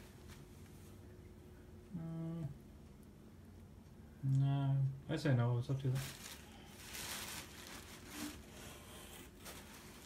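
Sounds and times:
person humming: 1.9 - 2.7.

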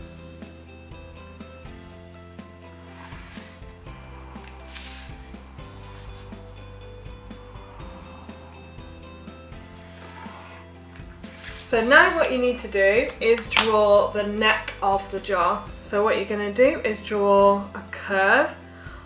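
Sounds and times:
light instrumental music: 0.0 - 19.0
pencil scraping on paper: 2.7 - 6.5, 9.6 - 12.4.

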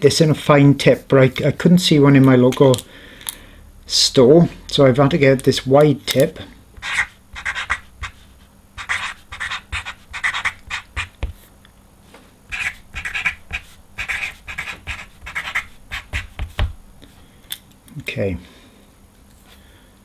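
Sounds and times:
marker scratching on paper: 6.8 - 11.4, 12.5 - 16.7.

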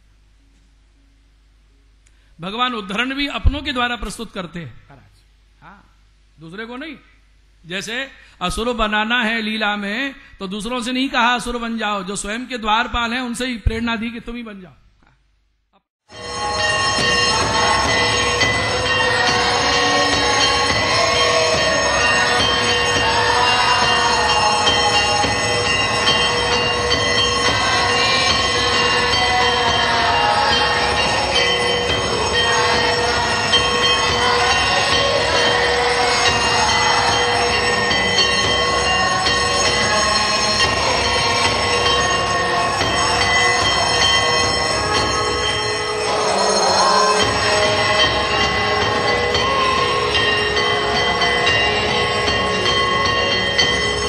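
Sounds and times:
temple bells ringing: 16.1 - 54.0.

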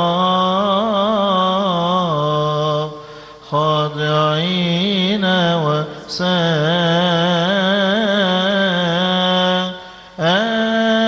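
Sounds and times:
man chanting a hymn: 0.0 - 11.0.

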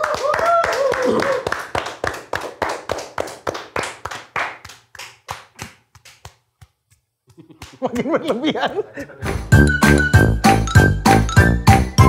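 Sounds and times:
people clapping hands: 0.0 - 9.2.

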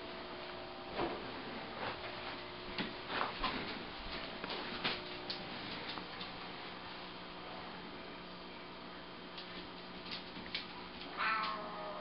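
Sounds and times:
cat yowling: 11.1 - 12.0.

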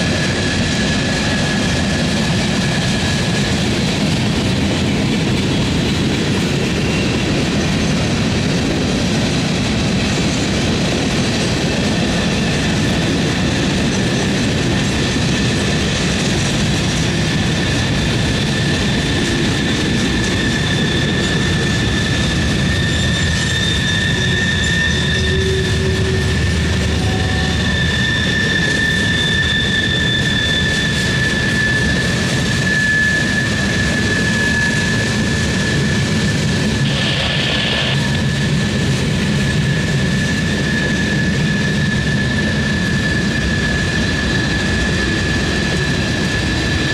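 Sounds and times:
steady high whine: 0.0 - 46.9
train wheels rumbling on rail: 0.0 - 46.9
steady high-pitched tone: 20.2 - 32.0, 34.4 - 38.9.

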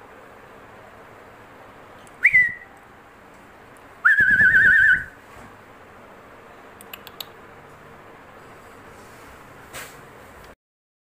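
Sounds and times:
person whistling: 2.2 - 2.7, 4.0 - 5.2.

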